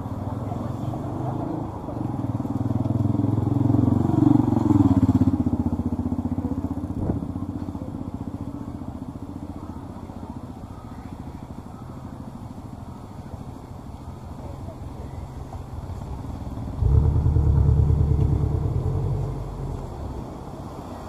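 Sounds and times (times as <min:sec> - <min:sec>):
vehicle engine passing by: 0:16.6 - 0:21.0.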